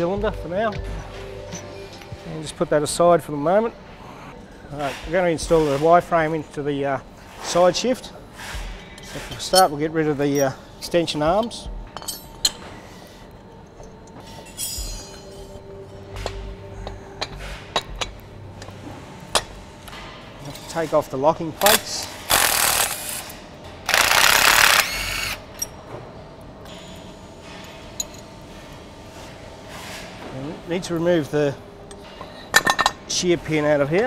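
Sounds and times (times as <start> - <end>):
faint workshop background: 0.0 - 34.0.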